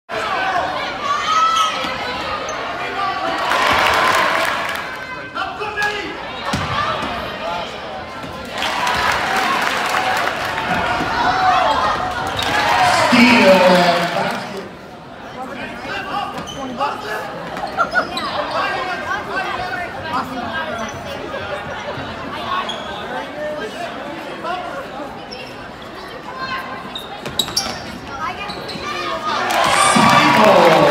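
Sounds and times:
crowd of voices: 0:00.1 - 0:30.9
crowd cheering: 0:03.2 - 0:05.2, 0:08.4 - 0:14.8, 0:29.2 - 0:30.9.

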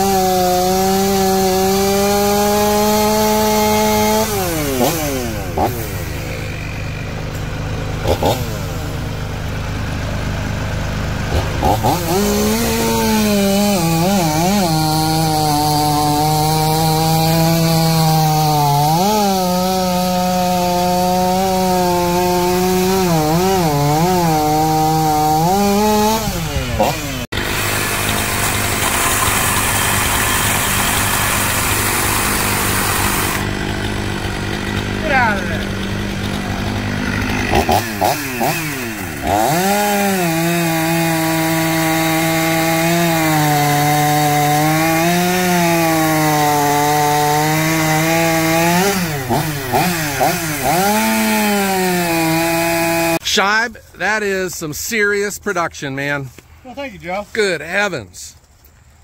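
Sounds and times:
cordless electric chainsaw cutting: 0:00.0 - 0:53.2
gas chainsaw cutting log: 0:00.0 - 0:54.4.

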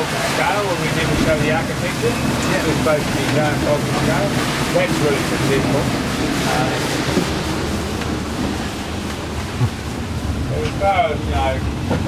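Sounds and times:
gale wind: 0:00.0 - 0:12.0
sea waves breaking: 0:00.0 - 0:12.0
wind buffeting microphone: 0:00.0 - 0:12.0.

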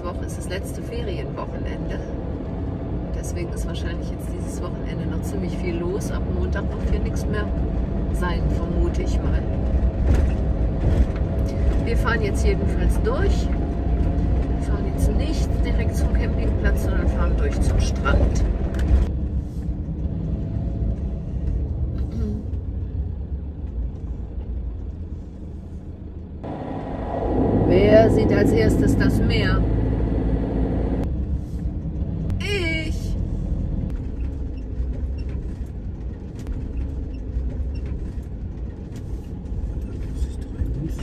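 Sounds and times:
engine and road rumble: 0:00.0 - 0:41.0.

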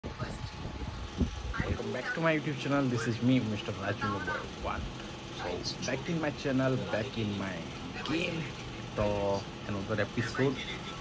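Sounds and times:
man speaking: 0:01.7 - 0:11.0.

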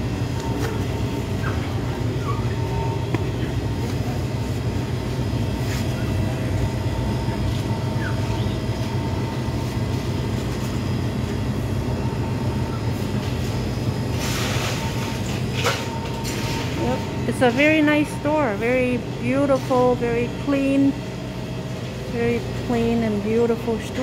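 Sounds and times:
faint constant whine: 0:00.0 - 0:24.0
machinery rumble and hum: 0:00.0 - 0:24.0.

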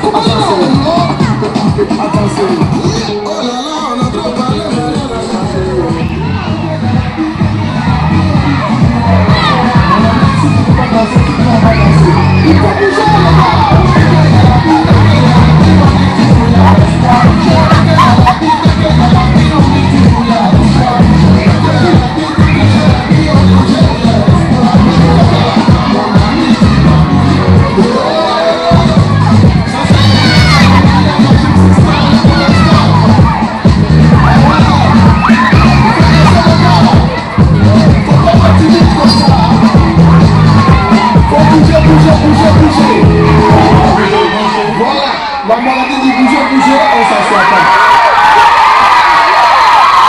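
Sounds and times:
dance music with bass beat: 0:00.0 - 0:49.2
children shouting and cheering: 0:00.0 - 0:50.0.

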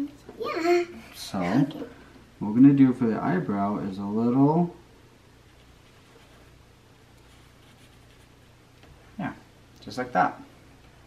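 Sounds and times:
markers scratching on paper: 0:07.2 - 0:08.4.

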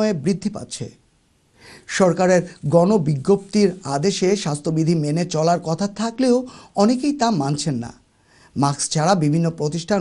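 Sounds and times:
man reading aloud: 0:00.0 - 0:10.0
sharp in-breath: 0:01.6 - 0:01.9.

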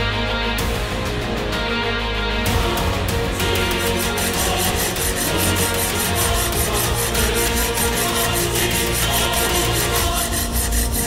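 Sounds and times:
tense background score: 0:00.0 - 0:11.0
fast even scraping rhythm: 0:02.8 - 0:11.0.

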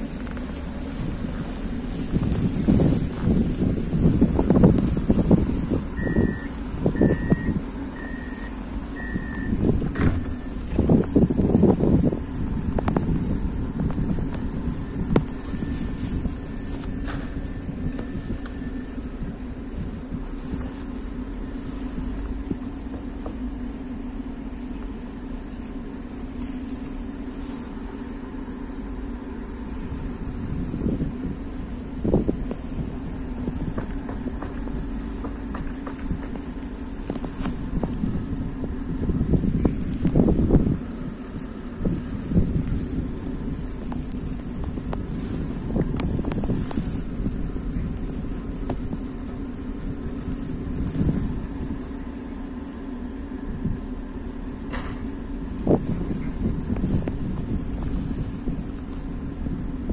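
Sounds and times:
tram humming: 0:00.0 - 0:59.9
wind buffeting microphone: 0:00.0 - 0:59.9
short electronic beeps: 0:06.0 - 0:09.6.

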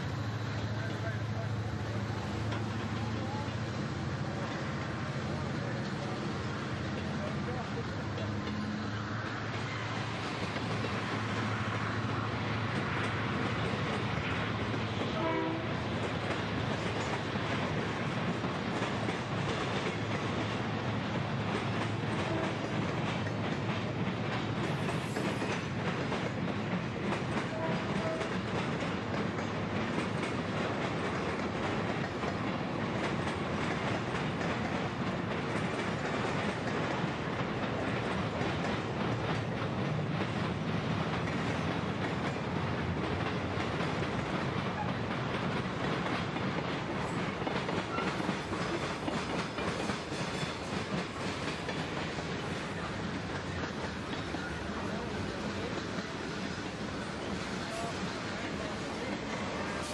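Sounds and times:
train wheels clacking on rails: 0:00.0 - 0:59.9.

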